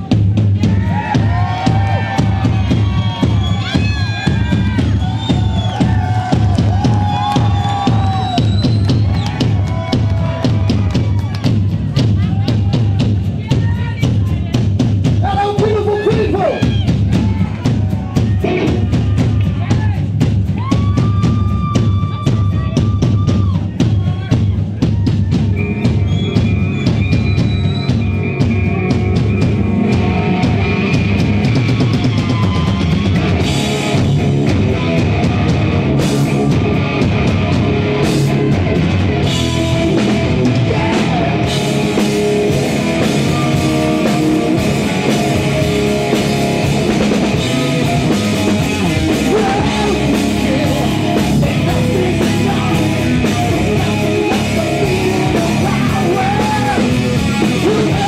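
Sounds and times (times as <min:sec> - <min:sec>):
drum kit beating: 0:00.0 - 0:58.0
hard rock band playing: 0:00.0 - 0:58.0
heavy bass: 0:00.0 - 0:58.0.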